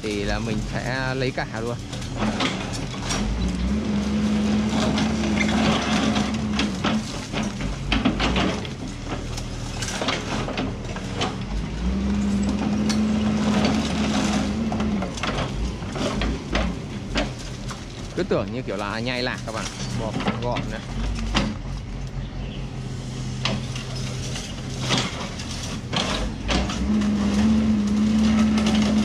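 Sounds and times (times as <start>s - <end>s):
excavator diesel engine under load: 0.0s - 29.0s.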